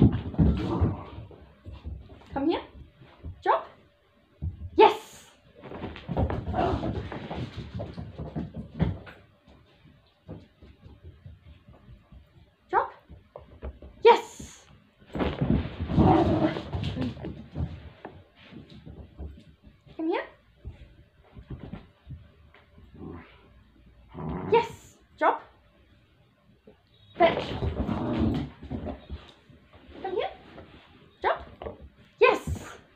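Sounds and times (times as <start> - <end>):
puppy feet scampering: 5.6 - 23.0.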